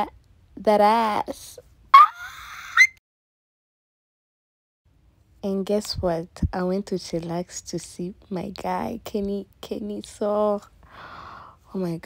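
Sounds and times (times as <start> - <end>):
woman's high-pitched breathy squeak: 2.0 - 3.0.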